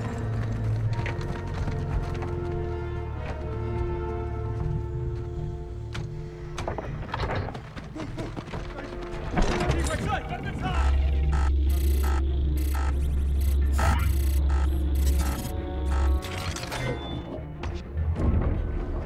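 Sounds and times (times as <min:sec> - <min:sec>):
stuttering electronic noises: 0:10.5 - 0:17.1.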